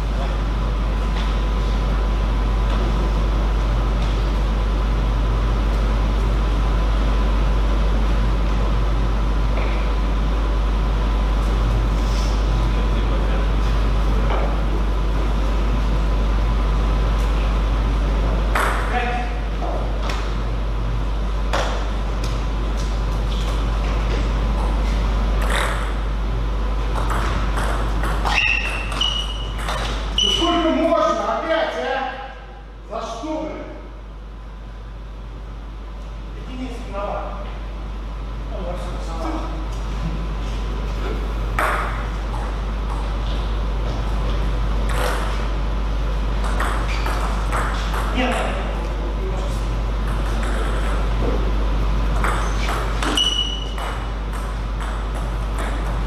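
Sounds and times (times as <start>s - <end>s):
room noise: 0.0s - 56.0s
ping pong ball clicking on paddles: 25.4s - 26.0s, 26.9s - 30.0s, 44.9s - 45.3s, 46.4s - 48.5s, 52.1s - 56.0s.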